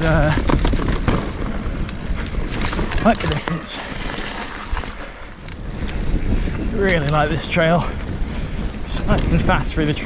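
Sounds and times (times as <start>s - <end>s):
bike knocks and rattles: 0.0s - 5.0s
bike tyres on dirt: 0.0s - 10.0s
wind rumbling on microphone: 0.0s - 10.0s.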